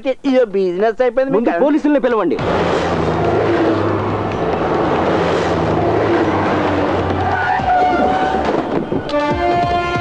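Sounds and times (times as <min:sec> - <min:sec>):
vehicles driving past: 0:02.4 - 0:09.8.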